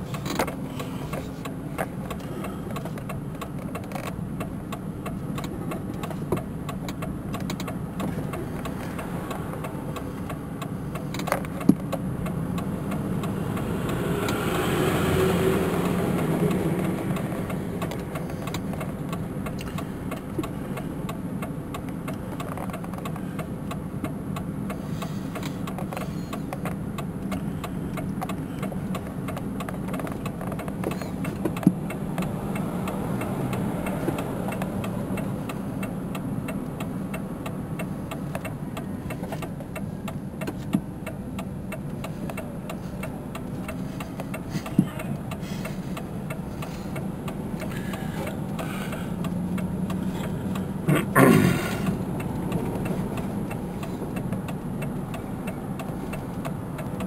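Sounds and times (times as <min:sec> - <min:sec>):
car engine and road hum: 0:00.0 - 0:57.0
sharp clicks: 0:00.1 - 0:14.4, 0:15.8 - 0:50.8, 0:51.6 - 0:57.0.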